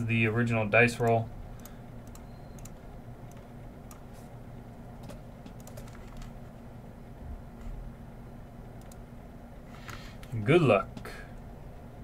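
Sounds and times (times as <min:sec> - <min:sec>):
low steady hum: 0:00.0 - 0:12.0
computer keyboard typing clicks: 0:01.0 - 0:04.0, 0:05.0 - 0:06.4, 0:08.8 - 0:09.0.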